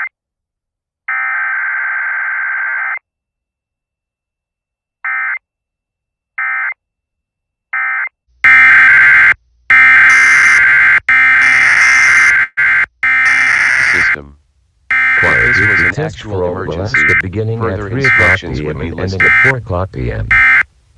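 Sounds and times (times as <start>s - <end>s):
screeching alert data tones: 8.5s - 14.2s, 14.9s - 16.0s, 16.7s - 19.6s, 20.3s - 20.6s.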